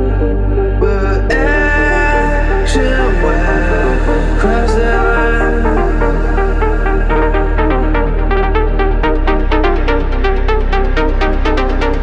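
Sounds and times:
melodic techno music: 0.0s - 12.0s.

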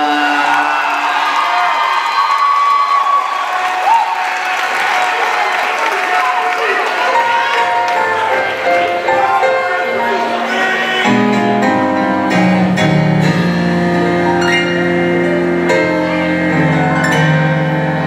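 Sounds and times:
whoops and shouts: 0.0s - 4.7s
crowd applauding and cheering: 0.0s - 11.6s
sustained keyboard chords: 7.1s - 18.0s.

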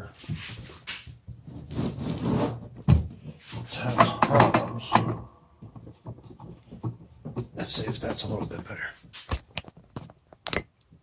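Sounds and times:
handling rustling and clicking: 3.6s - 11.0s
knocks: 3.8s - 8.2s.

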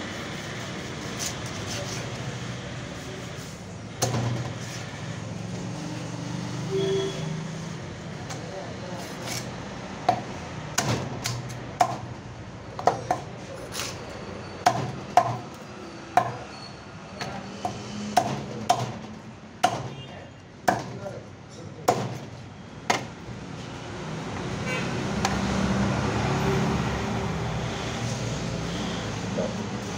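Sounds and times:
knife chopping fish on wood: 10.0s - 12.1s, 14.6s - 15.5s, 16.2s - 16.5s, 17.2s - 20.0s, 20.6s - 21.1s, 21.8s - 22.3s.

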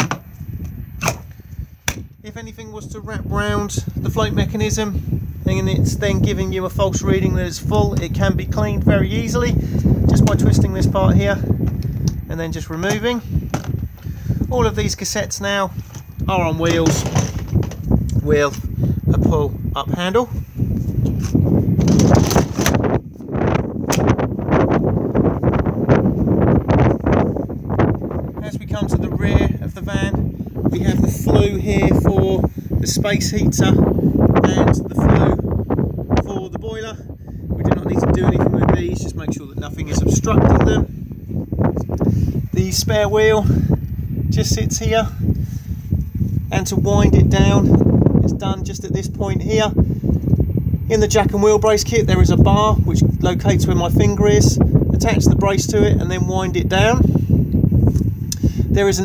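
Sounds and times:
wind on microphone: 0.0s - 59.0s.

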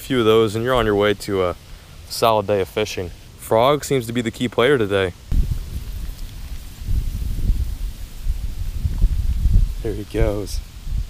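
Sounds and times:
light rustling: 5.3s - 9.8s
wind rumble on microphone: 5.3s - 11.0s.

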